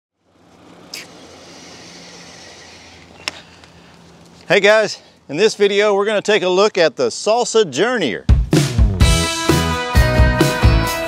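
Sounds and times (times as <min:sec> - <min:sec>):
low hum: 0:00.2 - 0:05.3
high hiss: 0:00.5 - 0:04.1.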